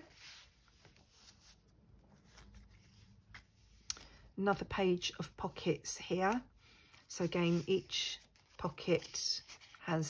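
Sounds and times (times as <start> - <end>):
paper pages rustling: 0.0 - 4.2, 6.0 - 10.0.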